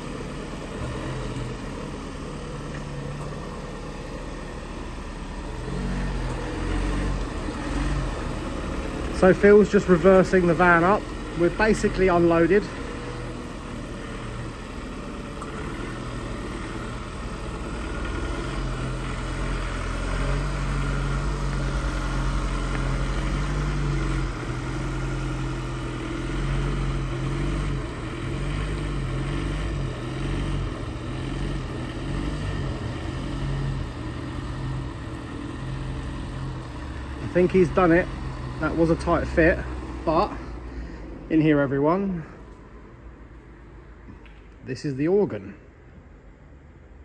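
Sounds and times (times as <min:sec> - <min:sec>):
diesel engine running low: 0:00.0 - 0:47.0.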